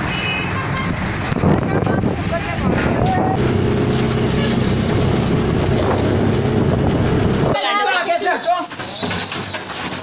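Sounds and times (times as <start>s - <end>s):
vehicle engine running steadily: 1.4s - 7.6s.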